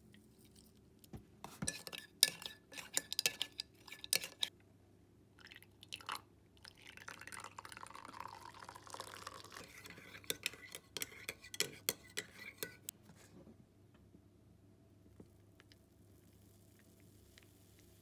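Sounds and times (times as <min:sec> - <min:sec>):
spoon clinking against mug: 0:01.6 - 0:04.5, 0:09.5 - 0:12.8
water pouring into mug: 0:05.4 - 0:10.5.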